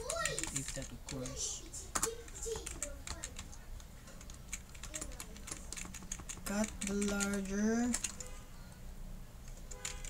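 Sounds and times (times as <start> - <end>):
keyboard keys clicking: 0.0 - 1.4, 2.0 - 3.5, 4.2 - 8.3, 9.5 - 10.0.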